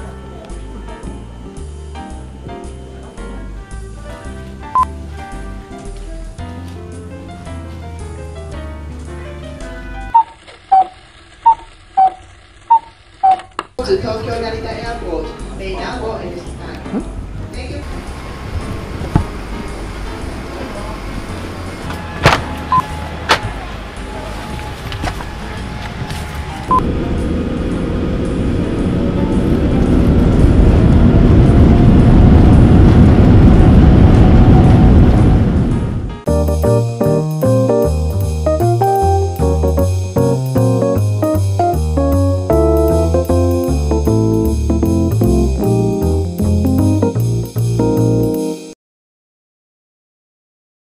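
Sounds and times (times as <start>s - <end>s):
background music: 0.0s - 10.2s, 13.8s - 31.2s, 36.2s - 48.8s
jet engines rumbling: 17.8s - 36.2s.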